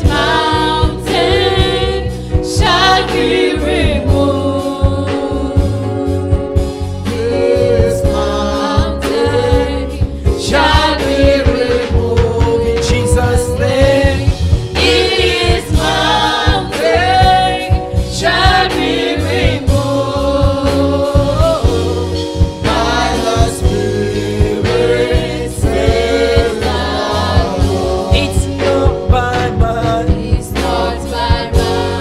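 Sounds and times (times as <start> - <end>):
instrumental accompaniment: 0.0 - 32.0
man singing into a microphone: 11.5 - 14.3.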